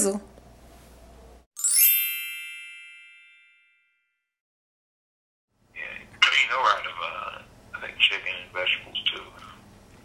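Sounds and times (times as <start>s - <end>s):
sparkly chime ding: 1.6s - 4.2s.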